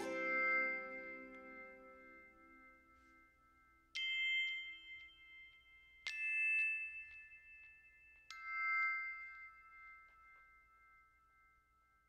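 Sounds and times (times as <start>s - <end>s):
bell-like chime ringing: 0.0s - 3.0s
faint light tinkles: 0.0s - 12.0s.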